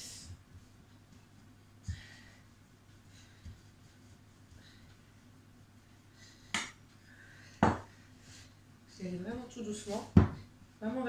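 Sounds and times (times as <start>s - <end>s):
rolling pin knocking on worktop: 7.6s - 7.9s.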